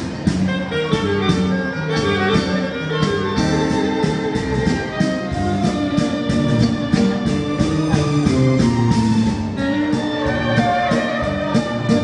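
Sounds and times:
keyboard accompaniment: 0.0 - 12.0
steady drum beat: 0.0 - 12.0
saxophone melody: 0.3 - 8.6, 9.5 - 12.0.

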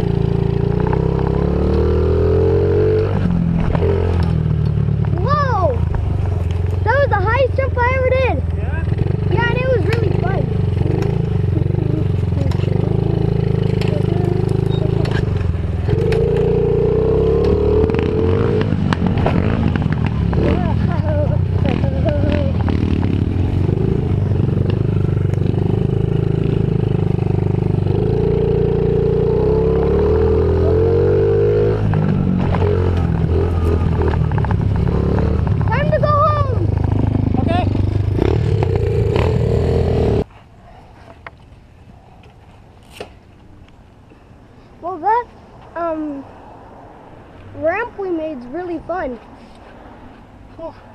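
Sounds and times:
dirt bike engine revving: 0.0 - 5.8, 6.7 - 40.3.

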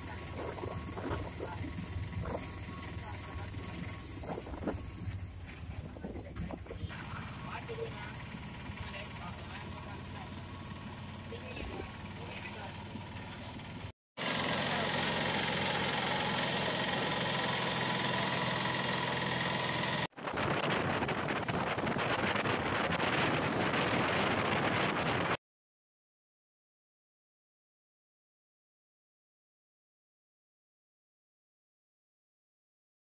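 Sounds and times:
engine running: 0.0 - 25.4
road and wind noise: 0.0 - 25.4.

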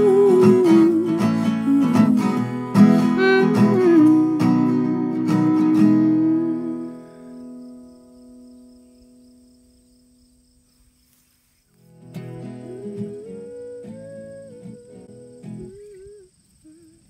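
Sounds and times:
person humming melody: 0.0 - 7.6, 12.4 - 17.0
acoustic guitar chord: 0.0 - 9.1, 11.9 - 16.9.

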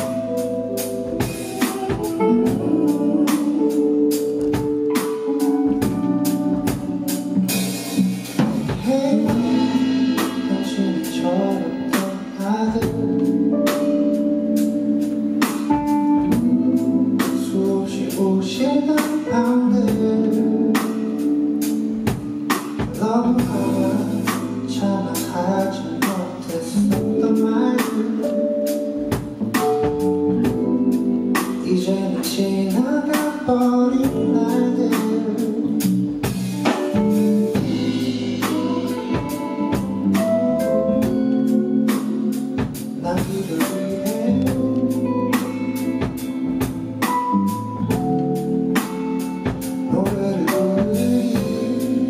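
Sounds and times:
drum kit beat: 0.0 - 52.0
keyboard chords: 0.0 - 52.0
live band playing soul-pop: 0.0 - 52.0
drum and cymbal hits: 0.8 - 2.7, 4.4 - 13.0, 36.2 - 41.2
man singing: 1.5 - 6.0, 8.7 - 13.8, 16.2 - 21.8, 22.8 - 28.9, 31.6 - 45.1, 49.8 - 52.0.

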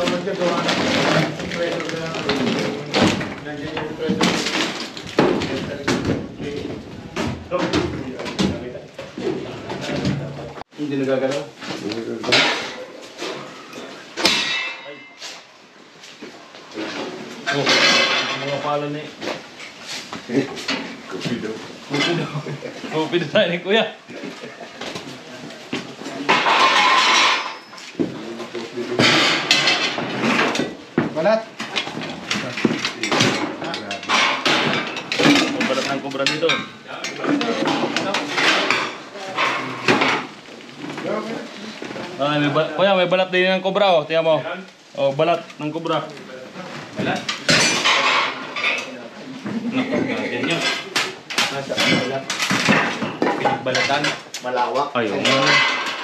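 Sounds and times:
knocks and rattles of junk: 0.0 - 10.3, 16.8 - 22.2, 24.2 - 41.2, 47.0 - 48.9, 49.5 - 54.3, 55.1 - 56.0
man talking: 20.3 - 26.4, 28.0 - 29.2.

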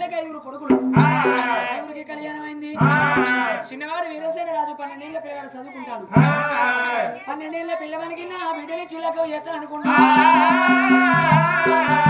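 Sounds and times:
person chanting a sung line: 2.8 - 3.6, 6.1 - 7.3, 9.8 - 12.0.

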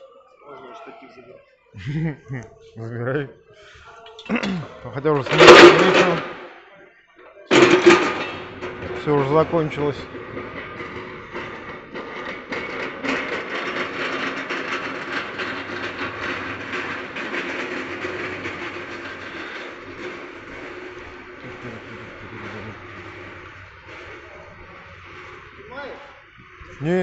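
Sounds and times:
rattling rolling machinery: 4.4 - 6.6, 7.5 - 27.0.

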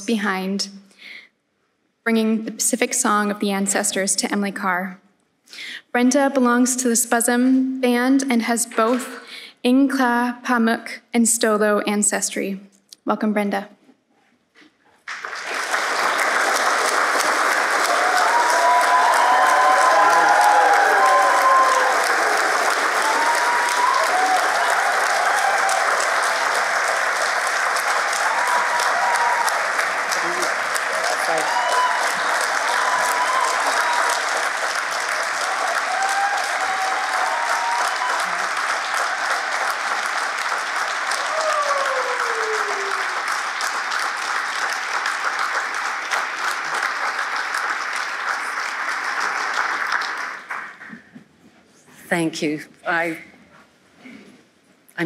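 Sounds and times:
audience clapping: 15.0 - 51.4
crowd whoops and calls: 17.8 - 26.8, 27.9 - 40.0, 40.9 - 43.2.

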